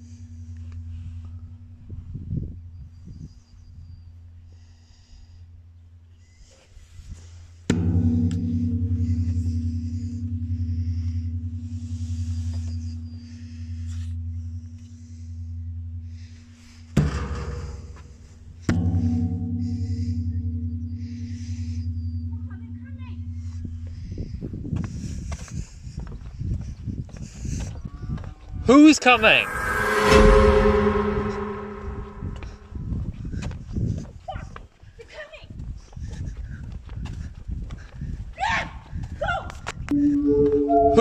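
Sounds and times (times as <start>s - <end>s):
deep gong strikes: 7.7s - 11.7s, 18.7s - 21.2s, 29.1s - 32.8s
low drone: 29.0s - 32.9s, 39.9s - 41.0s.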